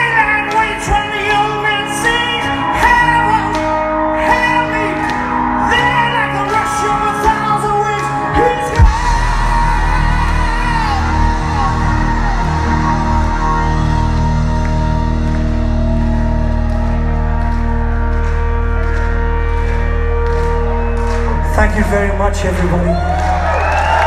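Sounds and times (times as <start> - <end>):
bass and electric guitar ringing: 0.0 - 24.0
live rock band: 0.0 - 24.0
loud band hit: 8.8 - 14.4.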